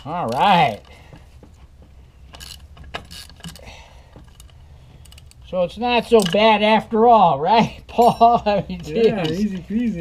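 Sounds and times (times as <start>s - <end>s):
hand tool clicks and clinks: 2.3s - 6.5s, 8.0s - 9.8s.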